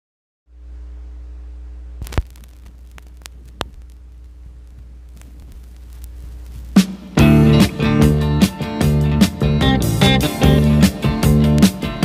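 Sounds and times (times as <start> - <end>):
turntable mains hum: 0.5 - 12.0
vinyl surface clicks: 2.0 - 7.2.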